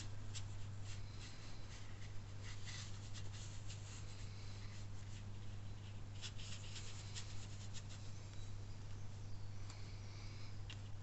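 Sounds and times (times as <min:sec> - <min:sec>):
brush scratching on paper: 0:00.0 - 0:08.0.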